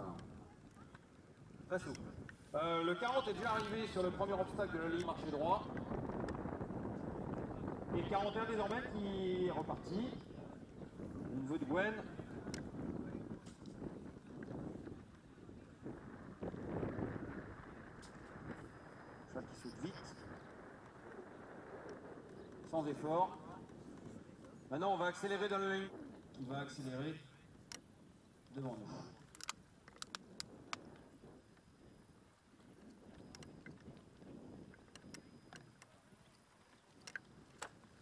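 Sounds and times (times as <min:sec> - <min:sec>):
wind buffeting microphone: 0:00.0 - 0:38.0
sharp clicks: 0:29.3 - 0:30.8, 0:34.9 - 0:35.9, 0:37.0 - 0:37.8.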